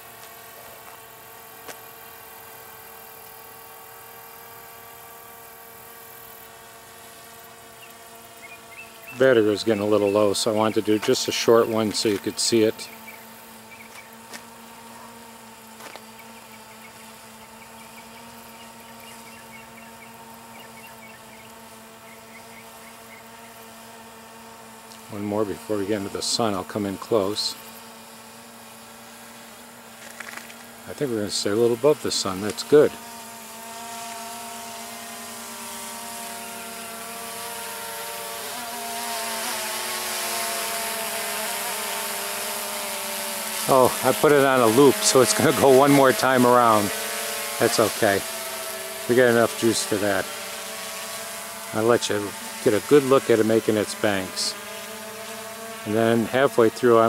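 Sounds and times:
drone propellers humming: 0:00.0 - 0:57.0.

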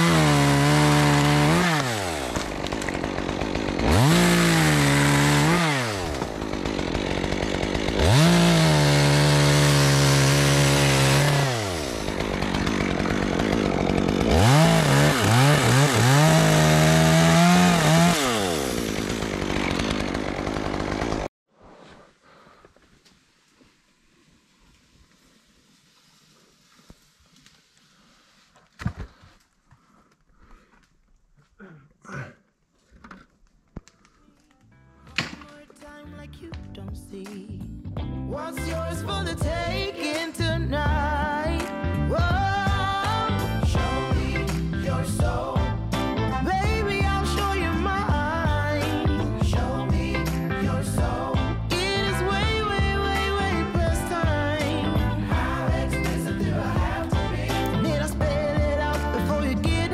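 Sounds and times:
chainsaw cutting limbs: 0:00.0 - 0:21.3, 0:42.4 - 0:59.9.

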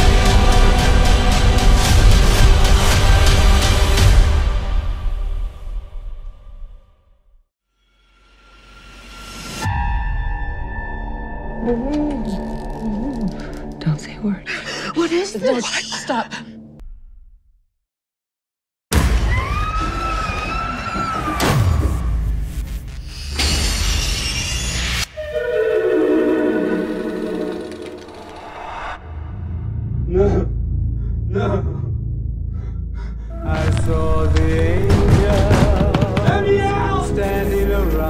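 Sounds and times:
horror trailer music: 0:00.0 - 0:17.5, 0:19.0 - 0:38.0.

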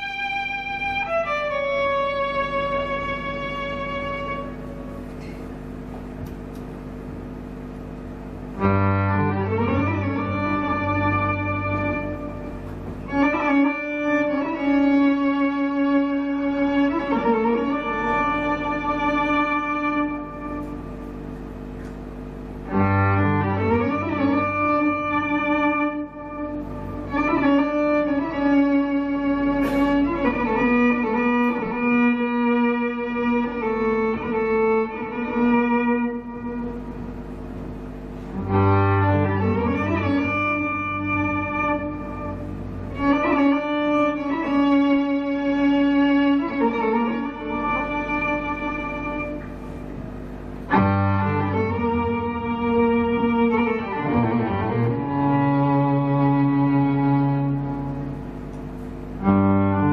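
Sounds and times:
amplified violin drone: 0:00.0 - 0:05.4, 0:07.5 - 0:59.9.

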